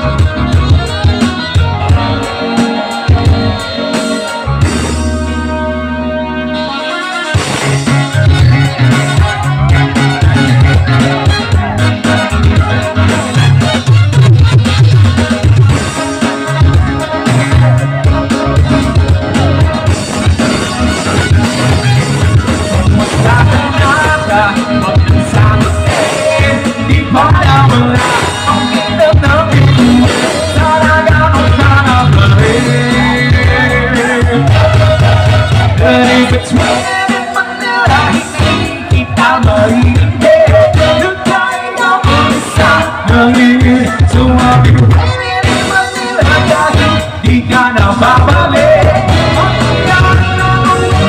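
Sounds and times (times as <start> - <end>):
drum kit beat: 0.0 - 5.6, 7.1 - 51.0
bass: 0.0 - 51.0
live band playing upbeat music: 0.0 - 51.0
saxophone and horn section: 0.0 - 51.0.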